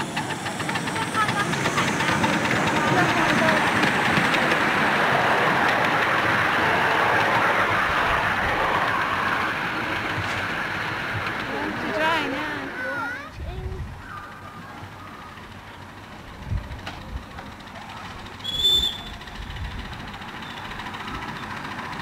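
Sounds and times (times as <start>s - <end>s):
model steam locomotive running: 0.0s - 22.0s.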